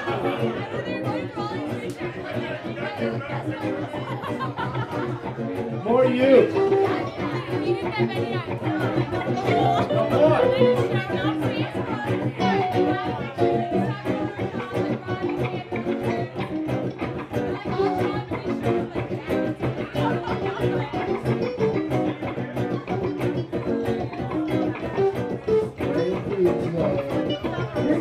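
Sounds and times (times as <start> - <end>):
bass guitar: 0.0 - 28.0
strummed acoustic guitar: 0.0 - 28.0
person singing: 6.5 - 16.5, 22.8 - 28.0
drums: 6.5 - 28.0.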